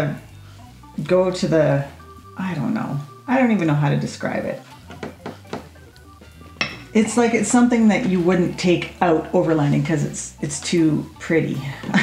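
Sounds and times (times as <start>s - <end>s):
glass clicking on wooden table: 6.6s - 6.9s.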